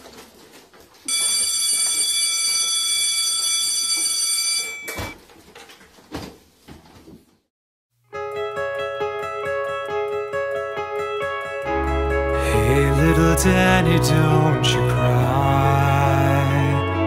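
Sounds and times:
electric school bell ringing: 1.1s - 5.2s.

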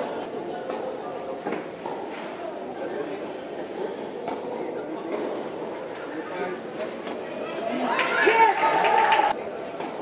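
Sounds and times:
echoing din of tennis hall: 0.0s - 10.0s.

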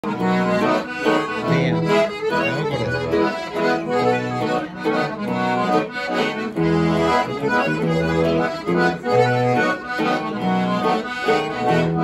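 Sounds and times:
button accordion melody: 0.0s - 12.0s
strummed acoustic guitar: 0.0s - 12.0s.

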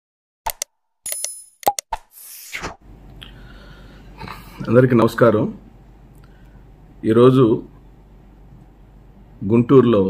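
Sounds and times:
clicks and pops: 0.5s - 2.1s.

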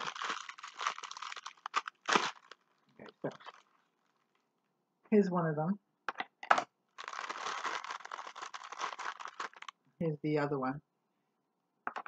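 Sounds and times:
plastic bag crinkling: 0.0s - 4.4s, 7.0s - 9.8s.

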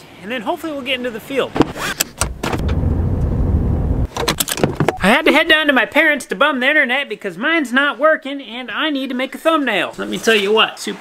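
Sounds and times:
vehicle rumbling on gravel road: 2.2s - 4.1s.

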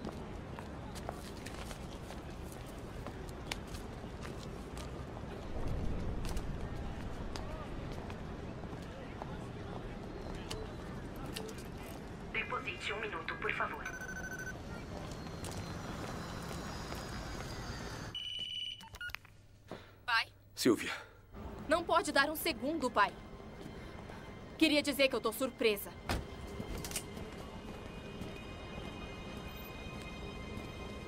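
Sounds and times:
street background sound: 0.0s - 31.0s
pay phone dialling beeps: 13.4s - 14.6s
steady telephone tone: 13.8s - 14.6s.

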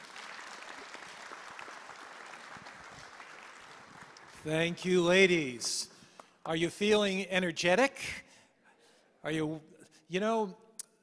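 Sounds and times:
audience applauding: 0.0s - 5.8s.

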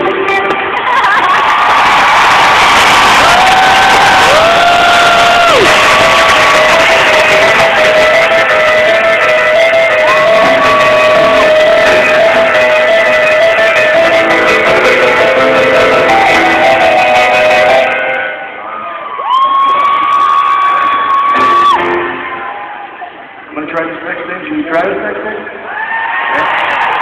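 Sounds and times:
live rock band playing: 0.0s - 1.4s, 3.2s - 18.6s, 21.1s - 22.7s
crowd cheering: 0.0s - 23.6s, 25.5s - 27.0s.

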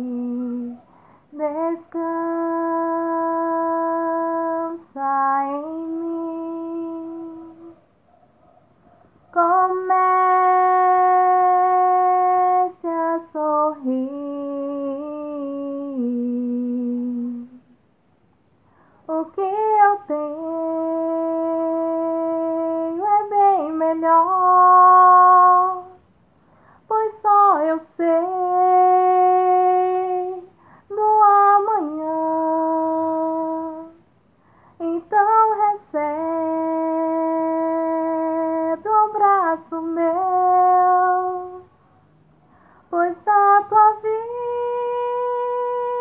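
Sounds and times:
woman singing unaccompanied: 0.0s - 7.8s, 9.3s - 17.9s, 19.0s - 26.2s, 26.8s - 41.8s, 42.8s - 46.0s.

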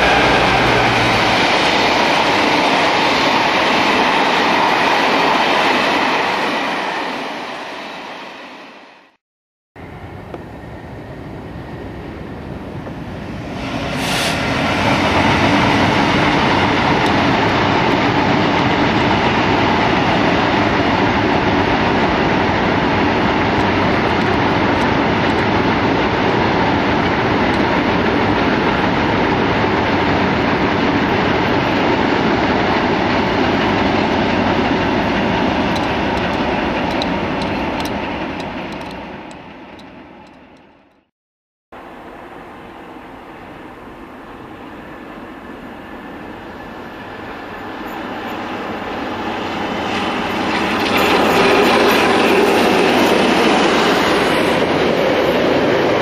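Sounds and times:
freight train wheels on rails: 0.0s - 9.2s, 9.8s - 41.1s, 41.8s - 56.0s
short high hiss: 13.6s - 14.5s.

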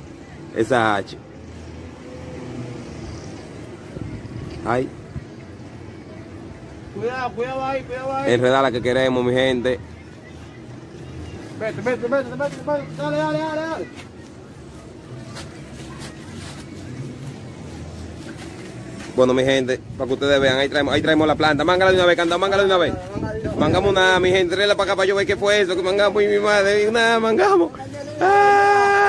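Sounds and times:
vehicle engine humming: 0.0s - 28.5s
faint distant voices: 0.0s - 29.0s
outdoor background noise: 0.0s - 29.0s.

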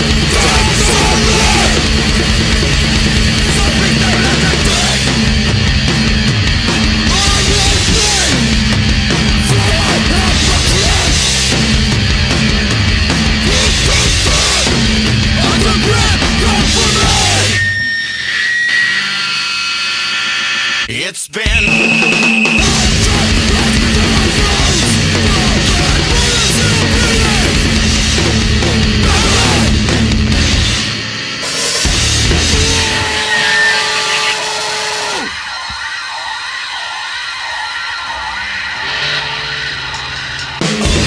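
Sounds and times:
full rock band playing: 0.0s - 19.3s, 20.4s - 41.0s
electric guitar feedback tone: 0.0s - 20.9s, 21.5s - 41.0s
high feedback tones: 15.5s - 24.4s, 32.2s - 41.0s.

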